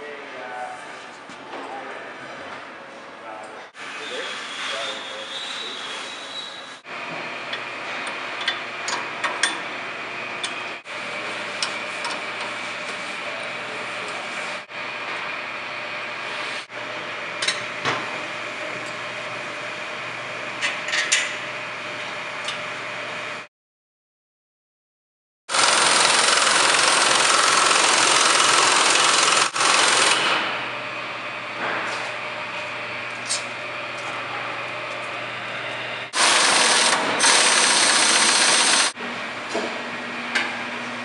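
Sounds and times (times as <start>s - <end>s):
steady machine hum: 25.6s - 41.0s.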